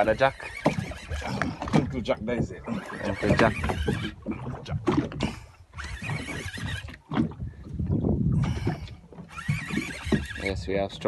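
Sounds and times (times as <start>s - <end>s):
water rushing: 0.0s - 7.6s
wind gusts: 0.0s - 11.0s.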